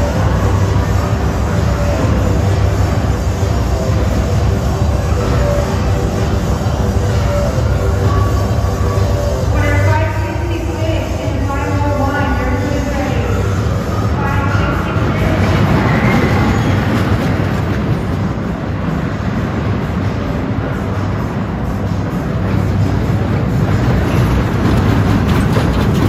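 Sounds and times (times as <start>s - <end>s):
roller coaster rumbling and rattling: 0.0s - 26.0s.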